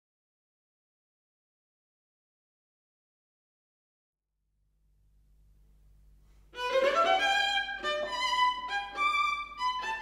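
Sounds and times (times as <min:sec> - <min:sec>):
solo viola bowed: 0:06.5 - 0:10.0.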